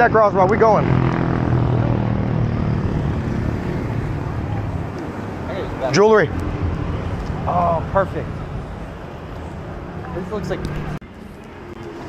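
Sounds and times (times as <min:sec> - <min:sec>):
hum of passing traffic: 0:00.0 - 0:12.0.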